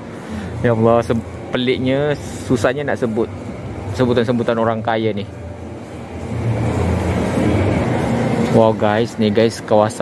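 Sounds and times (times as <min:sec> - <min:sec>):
rumbling shopping mall ambience: 0:00.0 - 0:10.0.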